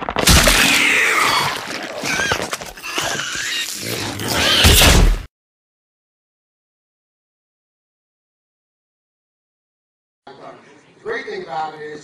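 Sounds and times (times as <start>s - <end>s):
creature squealing and grunting: 0.3s - 5.2s.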